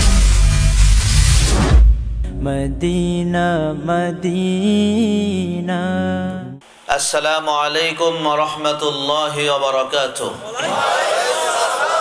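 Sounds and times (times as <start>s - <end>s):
loud rumbling whoosh: 0.0s - 4.1s
low steady drone: 0.0s - 4.2s
drawn-out sung vocal line: 2.3s - 9.1s, 10.5s - 12.0s.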